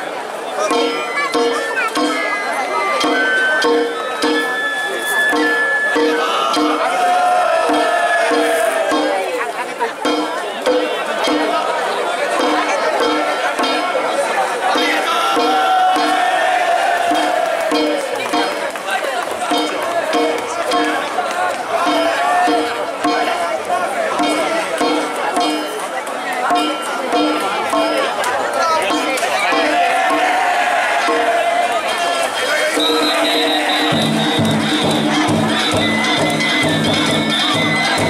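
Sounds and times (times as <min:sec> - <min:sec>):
crowd voices and shouts: 0:00.0 - 0:38.0
festival drums and gongs: 0:00.0 - 0:38.0.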